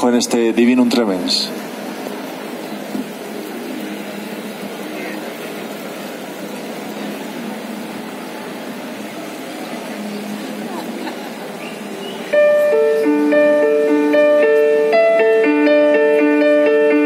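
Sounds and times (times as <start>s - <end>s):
chatter of passers-by: 0.0s - 14.9s
traffic hum: 0.0s - 16.3s.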